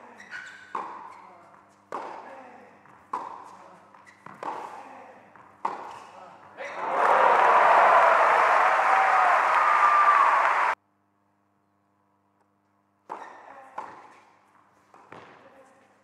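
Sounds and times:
tennis ball struck by rackets: 1.9 - 2.2, 5.6 - 6.1
crowd cheering and applause: 6.8 - 10.8.

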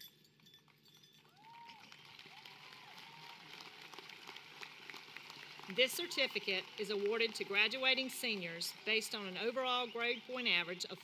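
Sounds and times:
distant crowd applause: 1.3 - 11.0.

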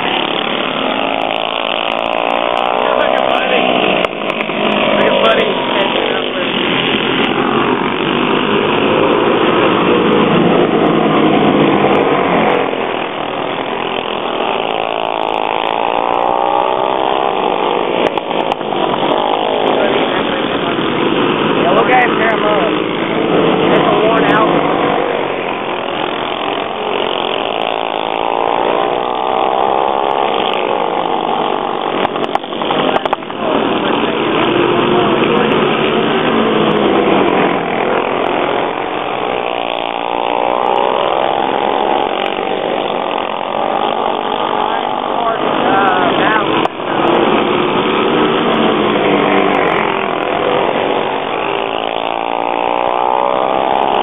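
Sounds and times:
kart engines racing: 0.0 - 54.0.

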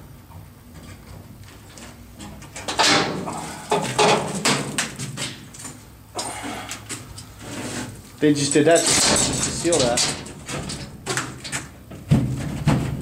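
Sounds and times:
metal door scraping and rattling: 7.4 - 13.0.

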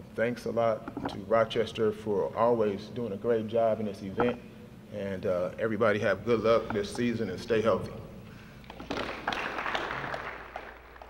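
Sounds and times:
audience applause: 8.7 - 11.0.

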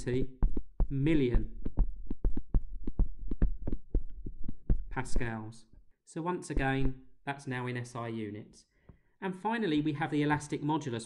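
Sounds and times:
stylus tapping on tablet screen: 0.0 - 5.8.

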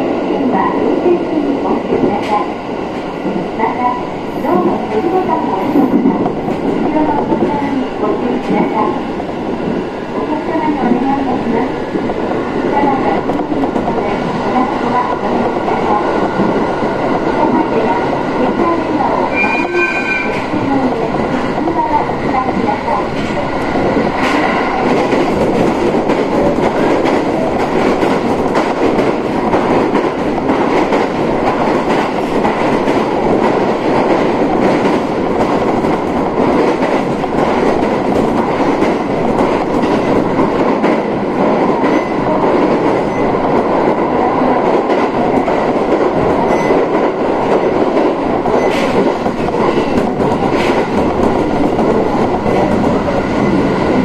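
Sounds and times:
train wheels clattering on rails: 12.9 - 54.0.

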